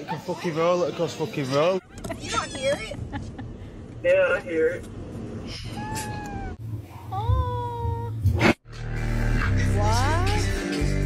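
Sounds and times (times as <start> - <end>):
cat meowing: 5.7 - 6.6.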